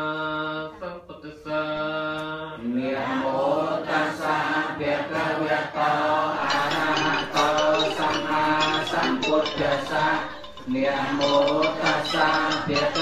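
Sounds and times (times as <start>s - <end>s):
group of voices chanting: 2.8s - 9.1s.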